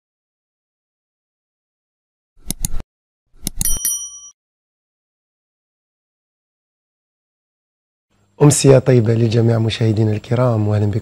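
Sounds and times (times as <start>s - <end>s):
mouse clicks: 2.4s - 2.8s
bright bell ding: 3.6s - 4.4s.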